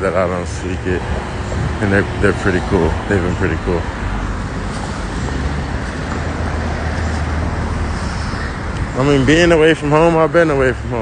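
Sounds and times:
low engine hum: 0.0s - 11.0s
street traffic rush: 0.0s - 11.0s.

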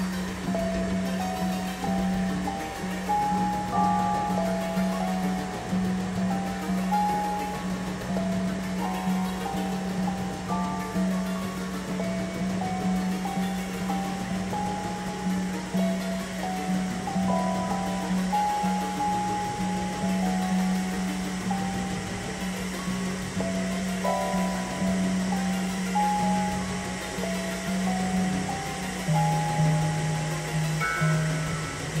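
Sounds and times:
hiss-like noise bed: 0.0s - 32.0s
low synthesizer drone: 0.0s - 32.0s.

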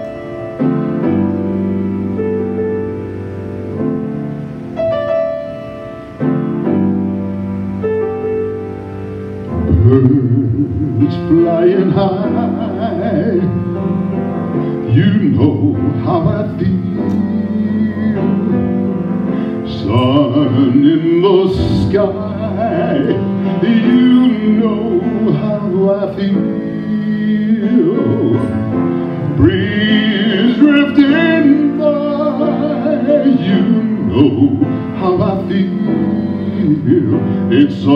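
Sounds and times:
grand piano accompaniment: 0.0s - 37.9s
man singing: 9.6s - 37.9s.

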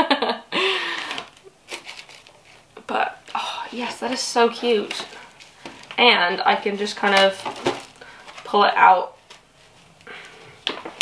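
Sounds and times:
woman laughing: 0.0s - 1.2s.

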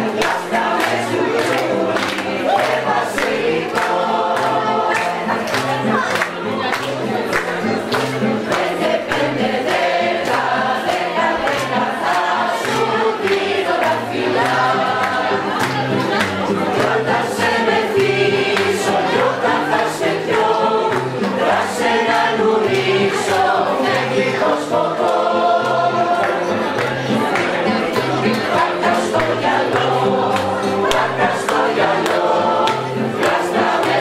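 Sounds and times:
choir singing: 0.0s - 6.4s, 7.0s - 34.0s
acoustic guitar strumming: 0.0s - 34.0s.

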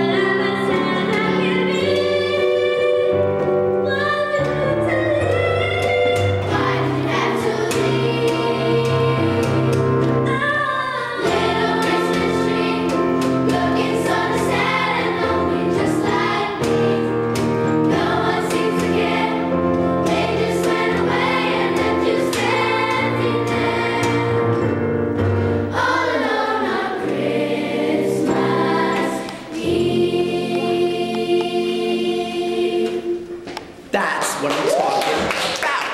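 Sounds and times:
children's chorus singing: 0.0s - 3.3s, 3.9s - 24.8s, 25.6s - 33.7s
musical accompaniment: 0.0s - 34.1s.

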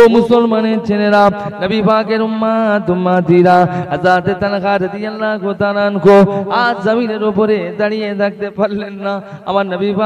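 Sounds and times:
man chanting a sermon: 0.0s - 10.0s.

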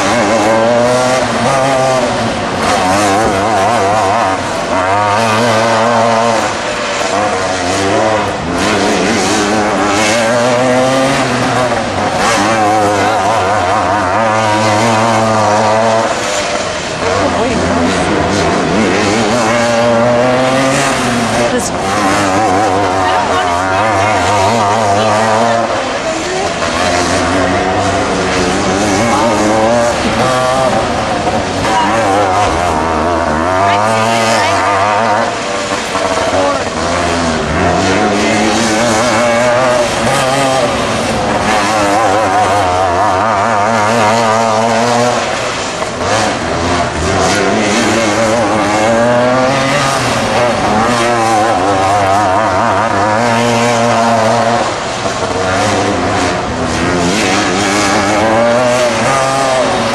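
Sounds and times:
kart engine racing: 0.0s - 59.9s.

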